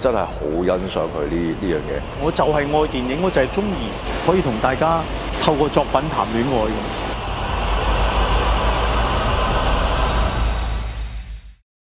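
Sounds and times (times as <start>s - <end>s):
dense wash of noise: 0.0s - 11.6s
loud low rumble: 0.0s - 11.6s.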